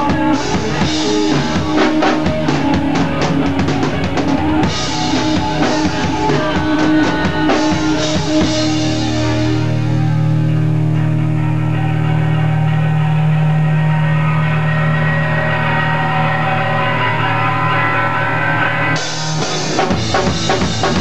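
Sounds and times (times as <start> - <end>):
distorted guitar and bass droning: 0.0 - 21.0
rock drums: 0.0 - 21.0.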